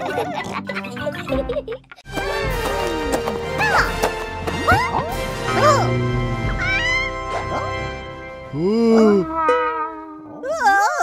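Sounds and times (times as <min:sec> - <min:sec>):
background music: 0:00.0 - 0:10.6
cartoon character voices: 0:08.6 - 0:11.0.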